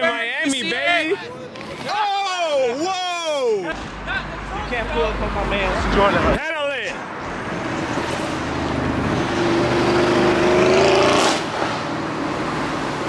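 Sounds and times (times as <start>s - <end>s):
road noise rushing: 3.6s - 13.0s
car engine passing by: 7.1s - 13.0s.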